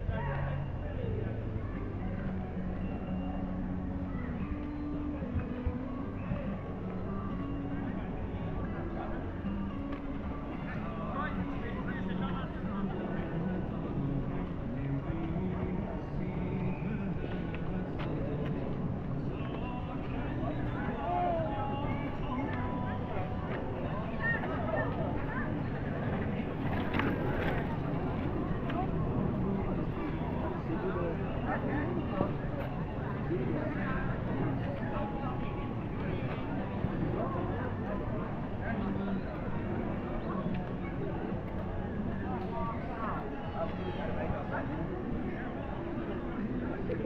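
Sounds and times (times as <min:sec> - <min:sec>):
people talking indistinctly: 0:00.0 - 0:47.0.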